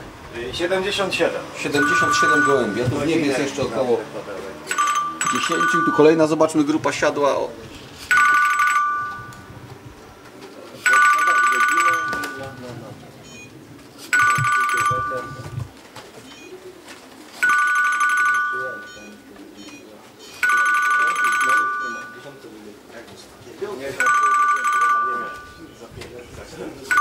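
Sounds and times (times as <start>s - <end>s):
two-tone electronic beeps: 1.6s - 3.1s, 4.7s - 6.3s, 8.1s - 9.5s, 10.9s - 12.6s, 13.2s - 13.6s, 14.2s - 15.7s, 18.4s - 22.4s, 24.0s - 25.7s.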